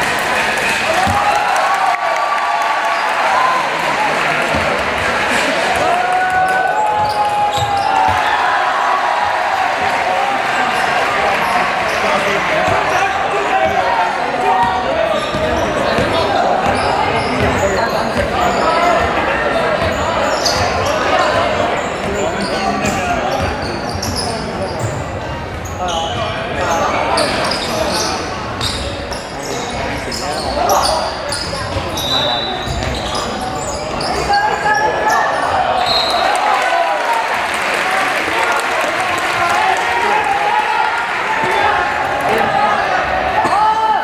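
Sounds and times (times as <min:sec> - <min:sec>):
hubbub of voices: 0:00.0 - 0:44.0
basketball bouncing on court: 0:01.0 - 0:01.3, 0:14.6 - 0:19.2, 0:22.8 - 0:24.1.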